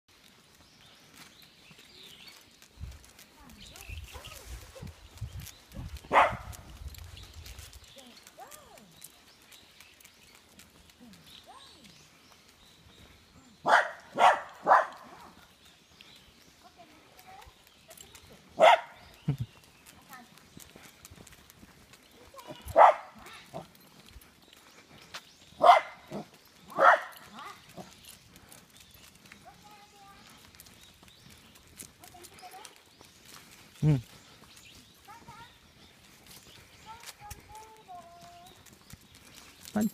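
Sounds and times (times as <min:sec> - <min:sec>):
footsteps on paved path: 0:00.1 - 0:39.9
dog barking: 0:06.1 - 0:06.6, 0:13.6 - 0:15.2, 0:18.6 - 0:19.0, 0:22.6 - 0:23.7, 0:25.6 - 0:27.3.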